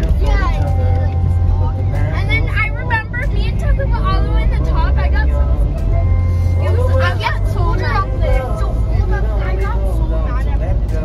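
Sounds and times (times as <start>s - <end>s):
background music: 0.0s - 11.0s
car cabin rumble: 0.0s - 11.0s.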